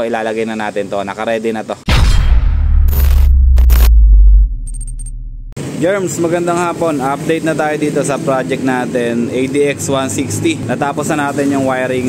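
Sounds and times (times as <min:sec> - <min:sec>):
deep bass boom: 0:01.9 - 0:05.6.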